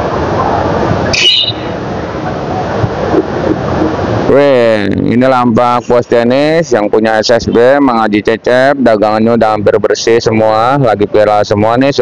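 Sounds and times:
high squeak: 1.2s - 1.8s.

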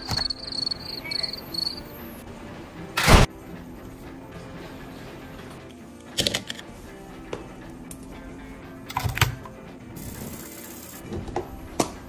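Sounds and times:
background music: 0.0s - 12.0s
hiss: 10.0s - 11.1s.

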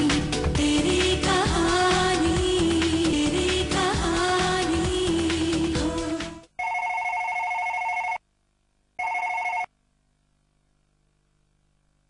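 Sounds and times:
telephone ringing electronic trill: 6.6s - 8.2s, 9.0s - 9.7s.

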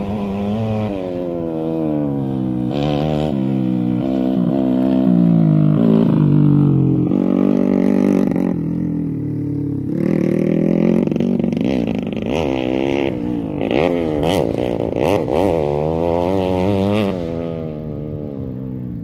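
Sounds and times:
motorcycle engine revving: 0.0s - 19.0s.

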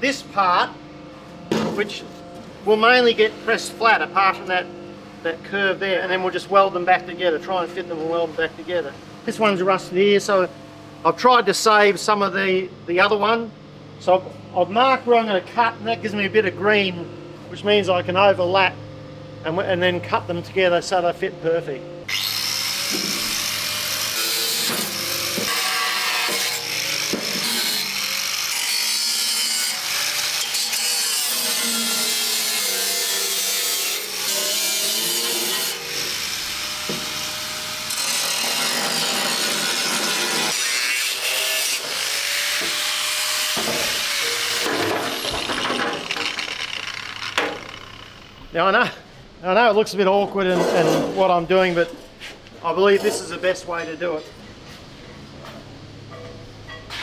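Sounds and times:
angle grinder cutting steel: 22.1s - 48.6s.

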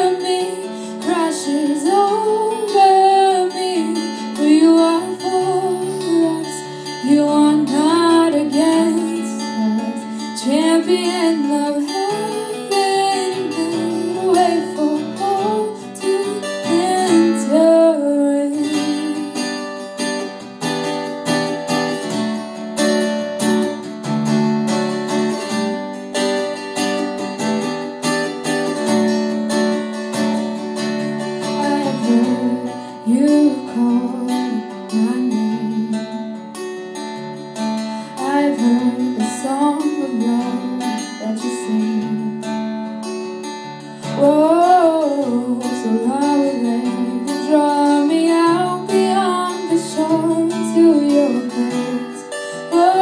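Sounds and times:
woman singing wordless lines: 0.0s - 19.8s, 31.4s - 36.3s, 38.1s - 42.6s, 44.0s - 53.0s
acoustic guitar: 0.0s - 53.0s.

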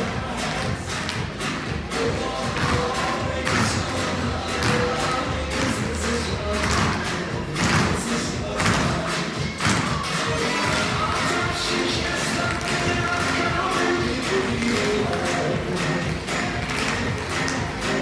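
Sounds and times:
music over loudspeakers: 0.0s - 18.0s.

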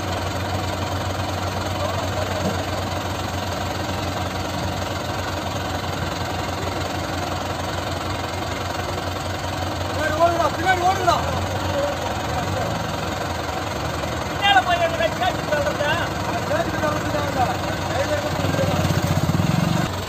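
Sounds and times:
tractor diesel engine idling: 0.0s - 20.0s.

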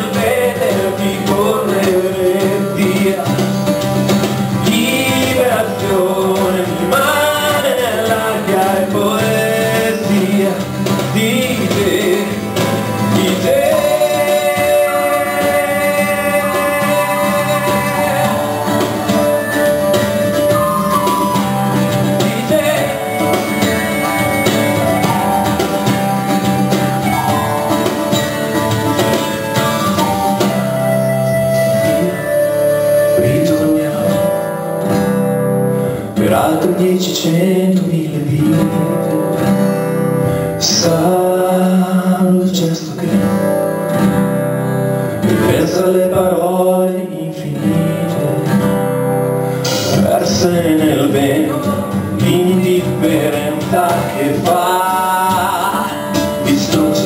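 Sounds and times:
man singing: 0.0s - 25.9s, 29.0s - 34.9s, 36.0s - 44.2s, 45.1s - 57.0s
acoustic guitar strumming: 0.0s - 57.0s.

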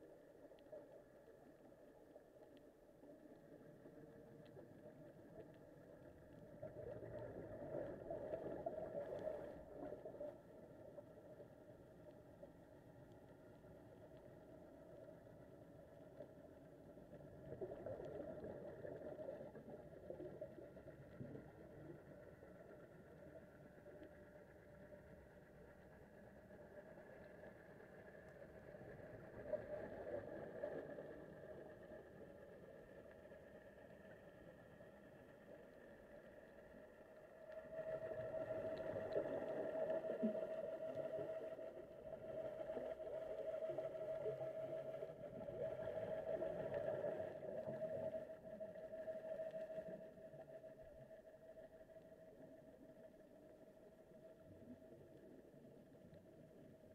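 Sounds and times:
swells of underwater noise: 0.0s - 56.9s
underwater hum: 0.0s - 56.9s.

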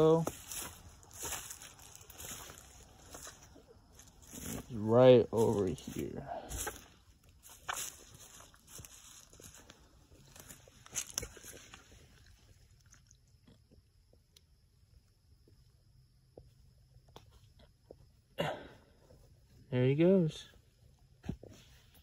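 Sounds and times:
dry leaves crackling underfoot: 0.0s - 13.0s.

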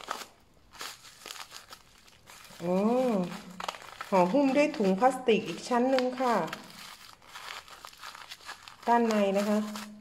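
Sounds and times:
plastic wrap crinkling: 0.0s - 10.0s
scissors cutting plastic: 0.0s - 10.0s.

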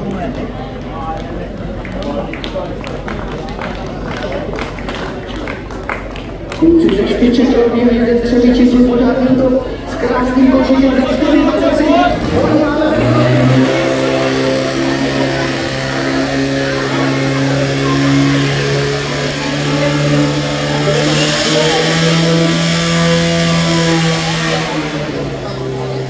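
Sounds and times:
pump engine droning: 5.8s - 26.0s.

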